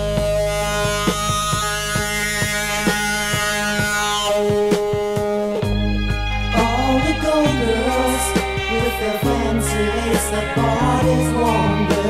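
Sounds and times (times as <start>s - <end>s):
rock band held chord: 0.0s - 12.0s
steady drum beat: 0.0s - 12.0s.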